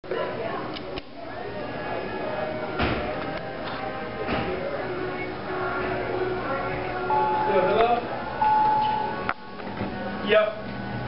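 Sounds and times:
background music: 0.1s - 11.0s
elevator electronic chime: 7.0s - 9.3s.

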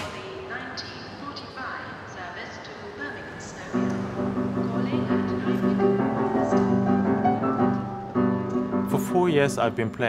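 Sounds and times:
people chattering: 0.0s - 7.2s
hall background hum: 0.0s - 10.0s.

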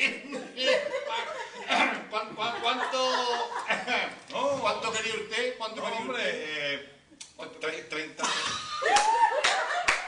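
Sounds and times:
hands clapping: 8.8s - 10.0s.

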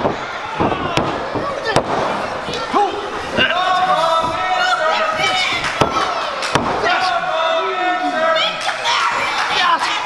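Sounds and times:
spectators shouting: 0.0s - 1.9s.

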